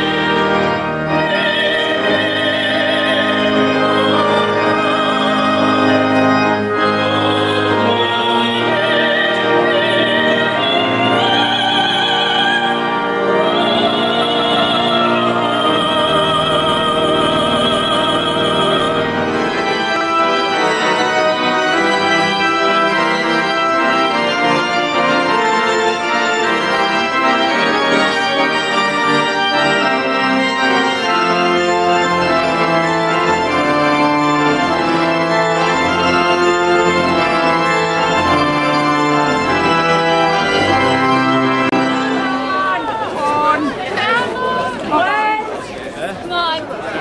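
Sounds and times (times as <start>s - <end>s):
organ playing slow chords: 0.0s - 43.2s
deep organ bass notes: 2.0s - 42.7s.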